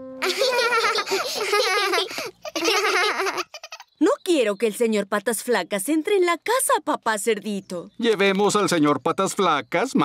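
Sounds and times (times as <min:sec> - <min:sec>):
young children giggling: 0:00.2 - 0:03.9.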